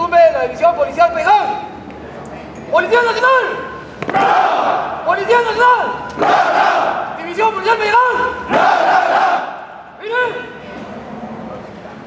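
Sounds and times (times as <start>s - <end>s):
group shouting in unison: 4.1s - 5.0s, 6.2s - 7.1s, 8.5s - 9.8s
person shouting a call: 7.2s - 8.5s, 10.0s - 10.6s.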